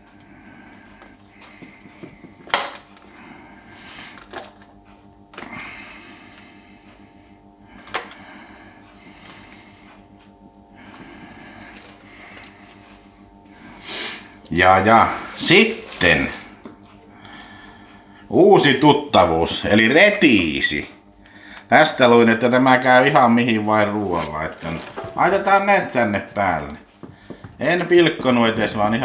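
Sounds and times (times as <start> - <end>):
pepper pieces rustling on greens: 14.8 - 16.6
low hum: 20.8 - 29.0.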